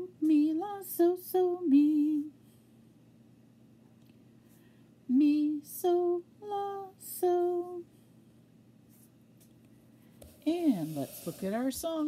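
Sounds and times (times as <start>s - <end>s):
woman singing unaccompanied: 0.0s - 2.4s, 5.1s - 7.9s.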